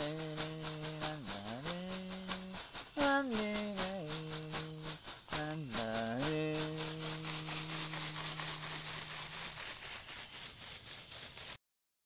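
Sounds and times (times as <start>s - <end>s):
man singing a held note: 0.0s - 9.2s
leaf rattle shaken rhythmically: 0.0s - 11.6s.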